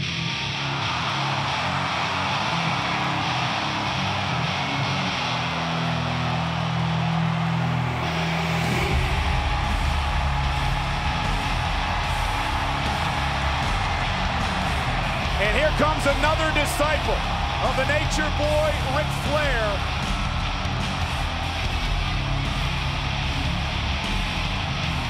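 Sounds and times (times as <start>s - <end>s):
hard rock music with electric guitar: 0.0s - 25.0s.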